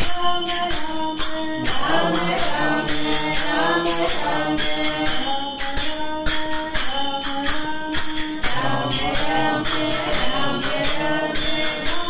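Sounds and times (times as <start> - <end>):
small metal hand cymbals: 0.0 - 12.0
voices singing devotional song: 0.0 - 12.0.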